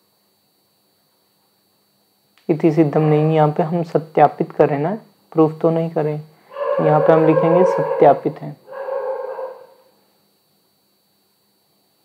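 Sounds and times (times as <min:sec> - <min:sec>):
man holding a drawn-out vowel: 0:06.5 - 0:09.8.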